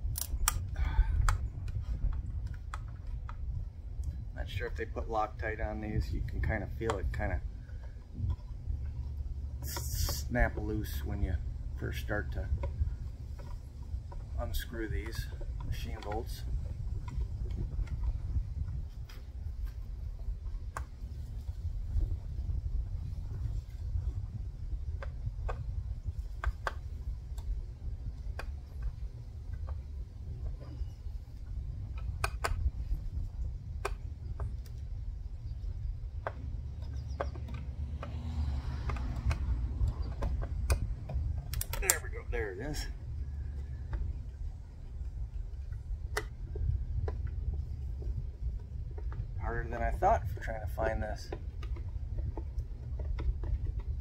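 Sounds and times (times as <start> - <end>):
steady low rumble: 0.0 - 54.0.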